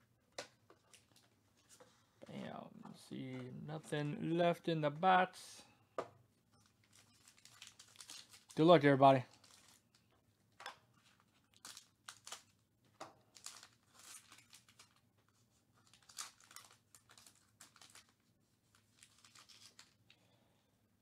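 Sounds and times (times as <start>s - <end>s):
wrapper crinkling and tearing: 6.8s - 10.0s, 11.0s - 12.6s, 13.3s - 15.1s, 15.8s - 20.1s.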